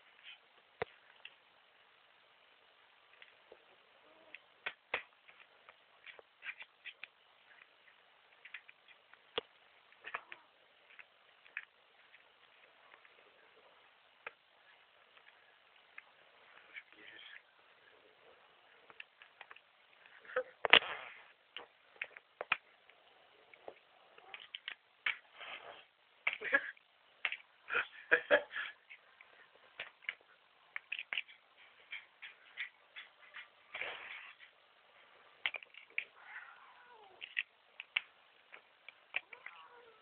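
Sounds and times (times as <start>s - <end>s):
light irregular clicks and taps: 37.2s - 39.6s.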